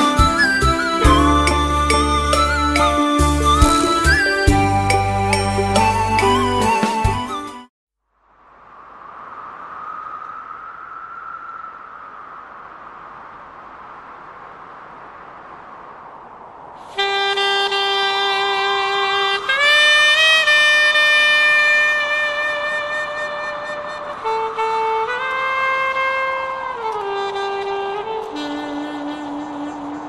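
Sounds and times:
wind instrument mournful melody: 0:00.0 - 0:07.6, 0:17.0 - 0:30.0.

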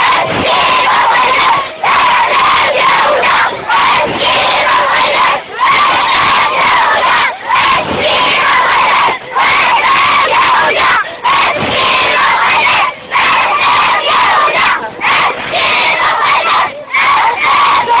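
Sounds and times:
crowd shouting a protest chant: 0:00.0 - 0:18.0.

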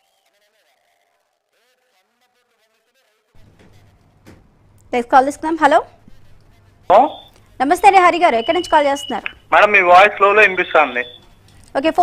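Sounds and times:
electrical hum: 0:03.4 - 0:12.0.

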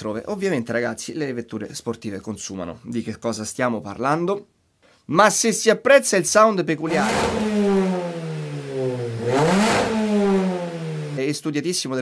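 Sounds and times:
car engine revving: 0:06.9 - 0:11.2.

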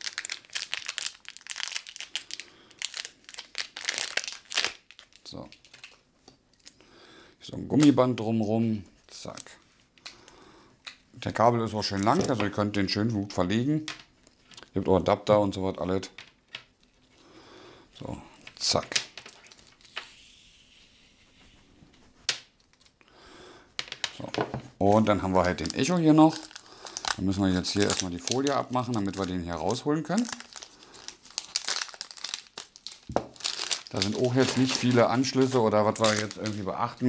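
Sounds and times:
plastic cable rustling: 0:00.0 - 0:06.8, 0:11.8 - 0:12.6, 0:18.4 - 0:20.1, 0:23.8 - 0:37.0
plastic packaging crinkling: 0:00.0 - 0:06.8, 0:11.8 - 0:12.6, 0:18.6 - 0:20.0, 0:24.9 - 0:37.0.

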